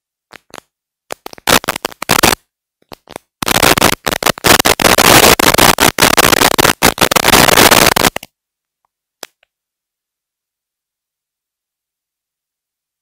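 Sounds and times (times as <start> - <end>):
harsh static burst: 1.1 - 2.4, 3.0 - 8.3.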